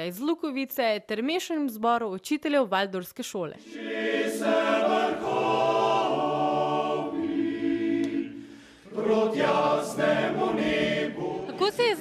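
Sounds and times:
male choir singing in harmony: 3.6s - 12.0s.

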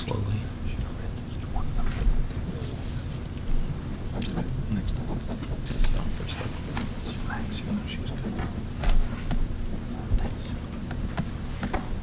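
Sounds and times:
people talking quietly: 0.0s - 3.4s, 4.1s - 8.6s, 9.8s - 10.7s
steady low hum: 0.0s - 12.0s.

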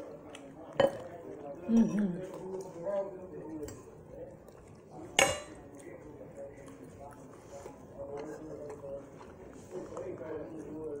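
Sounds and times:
faint eating sounds: 0.0s - 11.0s
cutlery clinking on dish: 5.2s - 5.6s.

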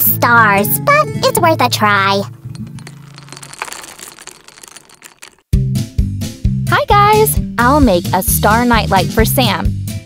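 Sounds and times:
hard candies clattering: 2.4s - 5.5s.

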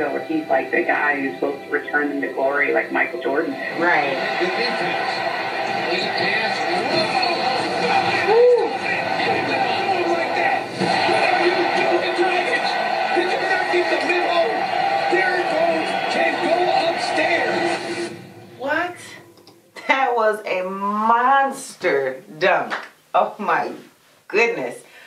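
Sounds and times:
arena crowd noise: 0.0s - 19.2s
television commentator speaking: 0.0s - 19.2s, 19.8s - 25.0s.

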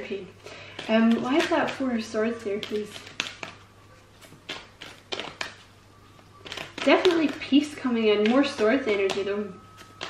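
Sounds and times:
cards being shuffled by hand: 0.6s - 5.7s, 6.4s - 10.0s.

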